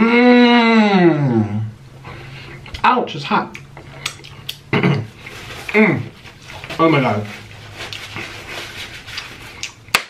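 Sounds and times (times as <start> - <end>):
person speaking: 2.7 - 3.6, 5.3 - 8.1
small wet mouth clicks: 3.5 - 4.7
person chewing food: 3.5 - 6.8, 7.4 - 10.0.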